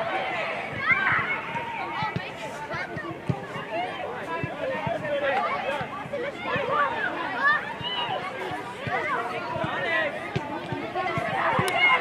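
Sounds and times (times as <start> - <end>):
children calling and shouting: 0.0 - 12.0.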